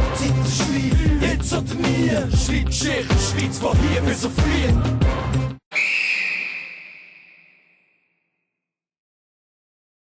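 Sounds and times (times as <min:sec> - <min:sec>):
rap music: 0:00.0 - 0:05.6
long whistle blast: 0:05.7 - 0:08.2.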